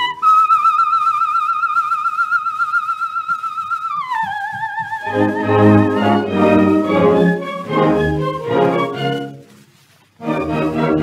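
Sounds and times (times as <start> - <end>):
record surface crackle: 0.0 - 11.0.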